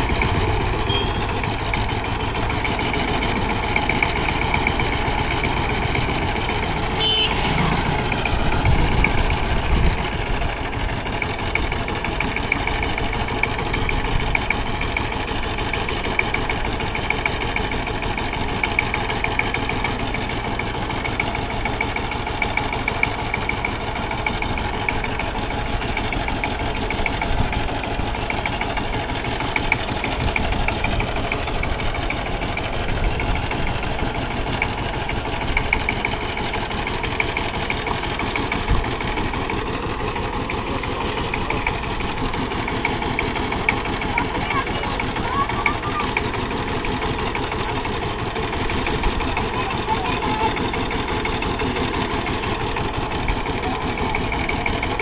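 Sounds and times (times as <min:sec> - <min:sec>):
diesel engine chugging: 0:00.0 - 0:55.0.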